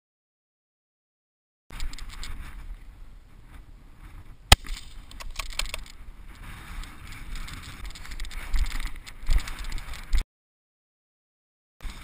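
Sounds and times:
quick clicks: 0:01.7 - 0:02.4, 0:04.5 - 0:06.0
rustling movement: 0:01.7 - 0:10.2
wind rumble on microphone: 0:01.7 - 0:10.2
sharp crack: 0:04.5 - 0:06.0.

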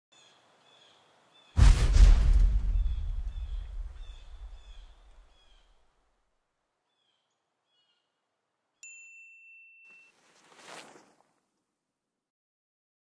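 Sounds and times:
loud boom with deep rumble: 0:01.6 - 0:05.3.

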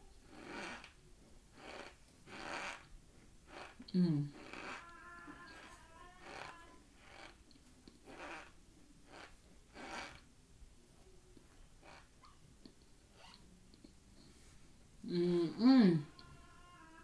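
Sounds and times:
person humming: 0:03.9 - 0:06.8, 0:15.0 - 0:17.0.

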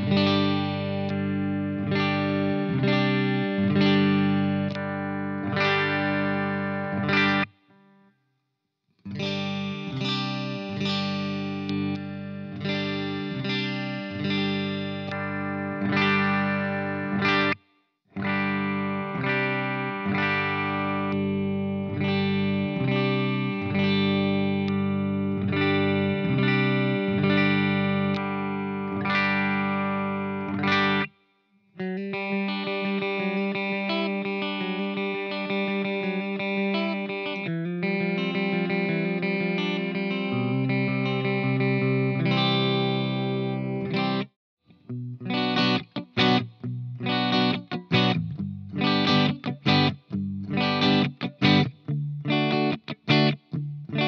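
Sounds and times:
clean electric guitar playing: 0:00.0 - 0:08.0, 0:09.1 - 0:17.6, 0:18.2 - 0:31.2, 0:31.8 - 0:54.0.

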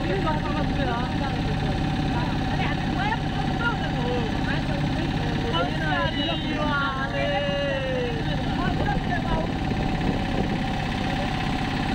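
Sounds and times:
road vehicle engine running: 0:00.0 - 0:11.9
wind on microphone: 0:08.8 - 0:10.8.

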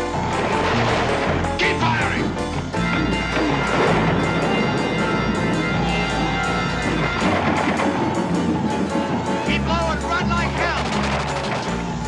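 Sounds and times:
sharp cracks and impacts: 0:00.0 - 0:01.8, 0:03.3 - 0:12.0
film score music: 0:00.0 - 0:12.0.

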